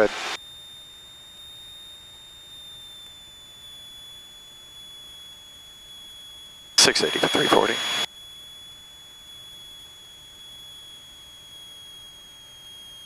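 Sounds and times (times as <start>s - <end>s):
faint high-pitched whine: 0.0s - 13.0s
person speaking: 6.8s - 8.0s.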